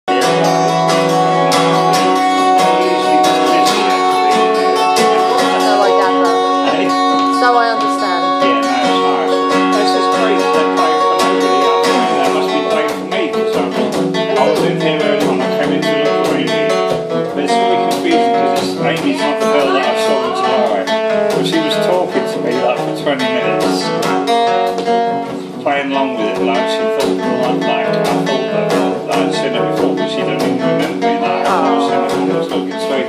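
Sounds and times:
acoustic guitar strumming: 0:00.1 - 0:33.0.

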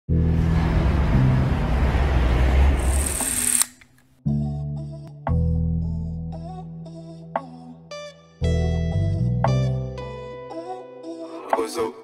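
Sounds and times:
deep bass tone: 0:00.1 - 0:02.8
dense noisy swell: 0:00.2 - 0:03.7.

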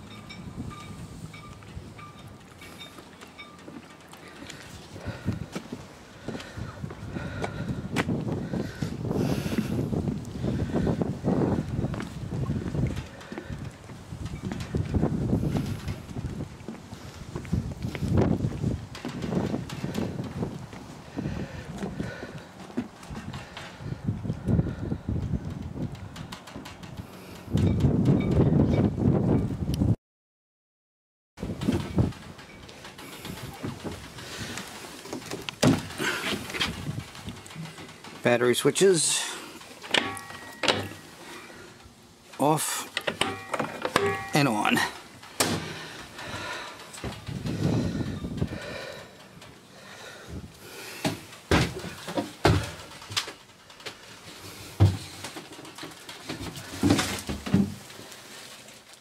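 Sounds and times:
wind buffeting microphone: 0:00.0 - 0:02.8, 0:04.3 - 0:30.0, 0:31.4 - 0:38.2, 0:45.0 - 0:53.8
handling knocks: 0:43.0 - 0:44.5.

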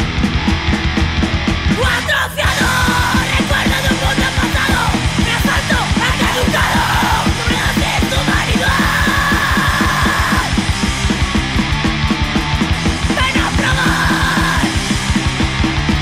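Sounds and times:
fast drumming: 0:00.0 - 0:16.0
hardcore punk song: 0:00.0 - 0:16.0
shouted vocals: 0:01.7 - 0:10.7, 0:13.1 - 0:14.8.

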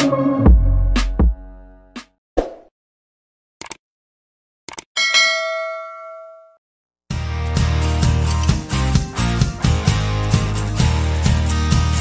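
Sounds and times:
notification bell ding: 0:05.0 - 0:06.6.

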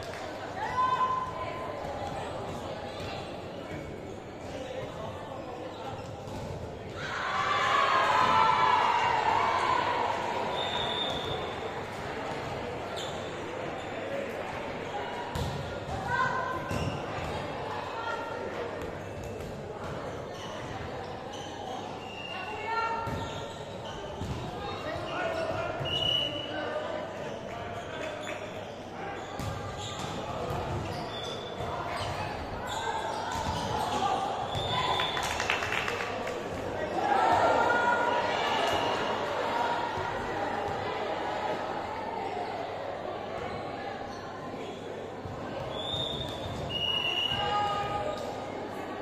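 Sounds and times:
voices calling in sports hall: 0:00.0 - 0:49.0.

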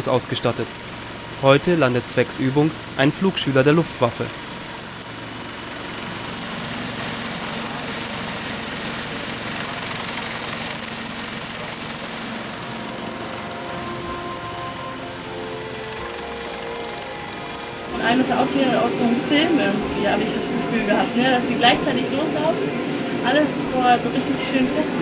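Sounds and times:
helicopter rotors turning: 0:00.0 - 0:25.0.

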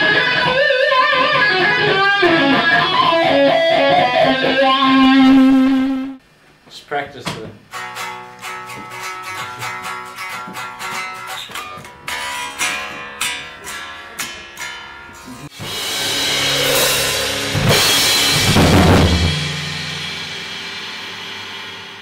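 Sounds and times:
hard rock band playing: 0:00.0 - 0:06.2, 0:07.7 - 0:13.2, 0:15.5 - 0:22.0
crashing cymbals: 0:15.6 - 0:22.0.

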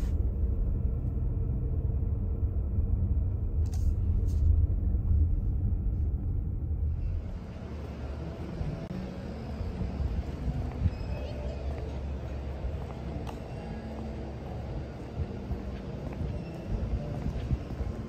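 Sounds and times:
car engine and tyre rumble: 0:00.0 - 0:18.0.

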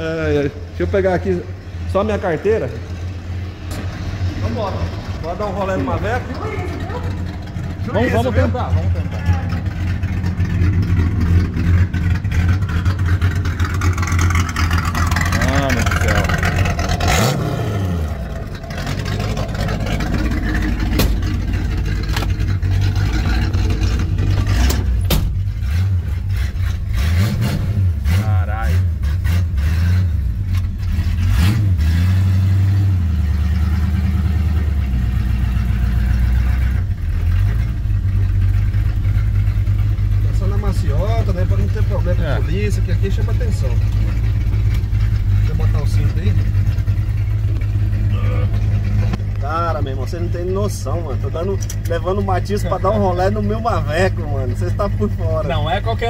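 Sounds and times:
car engine idling: 0:00.0 - 0:56.0
sharp knocks: 0:20.8 - 0:21.4.

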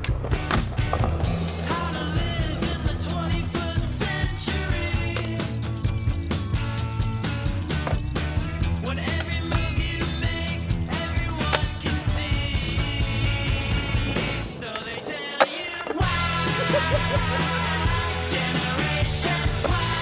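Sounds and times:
loud rock music: 0:00.0 - 0:20.0
skateboard wheels rolling on concrete: 0:00.0 - 0:20.0.

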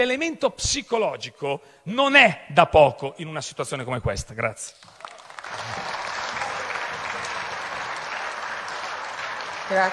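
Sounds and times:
applause: 0:04.8 - 0:09.9.

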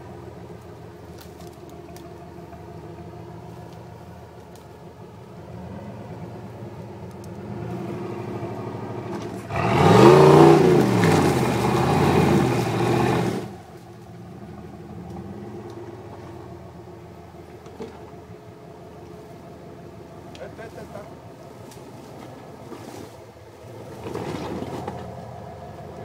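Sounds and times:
engine revving: 0:00.0 - 0:19.2, 0:20.0 - 0:26.0.

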